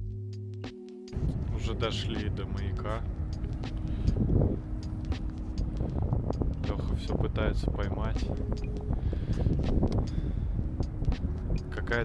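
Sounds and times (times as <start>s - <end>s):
steady low hum: 1.2s - 12.0s
wind rumbling on microphone: 1.2s - 12.0s.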